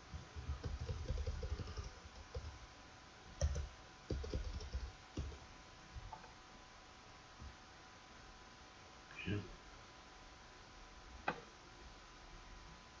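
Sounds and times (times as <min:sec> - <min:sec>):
computer keyboard keystrokes: 0:00.4 - 0:02.6, 0:03.4 - 0:05.4.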